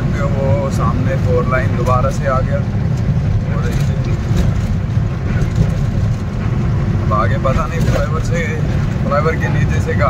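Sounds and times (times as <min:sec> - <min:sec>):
road noise: 0:00.0 - 0:10.0
truck engine rumbling: 0:00.0 - 0:10.0.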